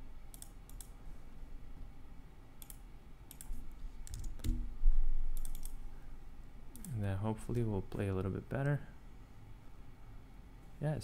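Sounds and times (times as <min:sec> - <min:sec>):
mouse and keyboard clicks: 0:00.3 - 0:00.9, 0:02.6 - 0:04.6, 0:05.4 - 0:05.8.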